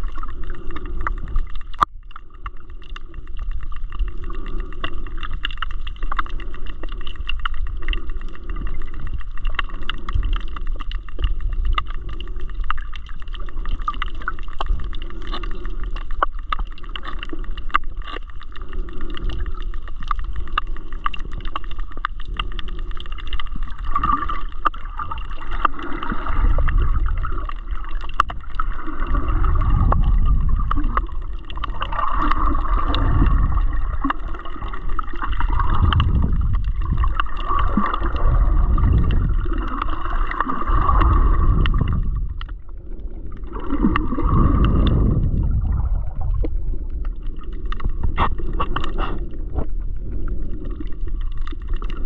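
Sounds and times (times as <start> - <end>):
faint steady hum: 0.0 - 52.0
muffled underwater water surges: 0.0 - 52.0.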